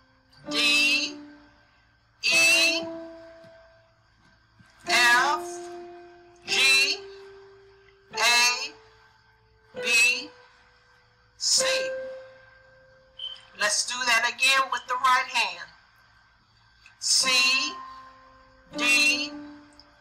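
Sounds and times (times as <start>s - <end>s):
piano notes on digital keyboard: 0.0s - 15.3s, 16.9s - 20.0s
woman speaking: 0.5s - 1.2s, 2.2s - 2.9s, 4.9s - 5.6s, 6.5s - 7.1s, 8.2s - 8.8s, 9.8s - 10.4s, 13.2s - 15.7s, 17.0s - 17.8s, 18.8s - 19.3s.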